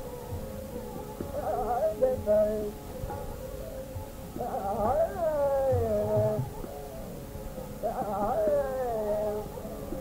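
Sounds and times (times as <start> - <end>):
man singing classical vocal: 1.4 - 2.8, 4.4 - 6.6, 7.8 - 10.0.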